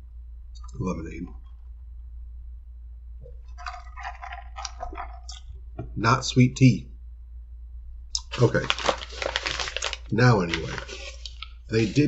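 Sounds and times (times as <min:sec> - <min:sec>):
sipping through a straw: 0:03.6 - 0:05.4.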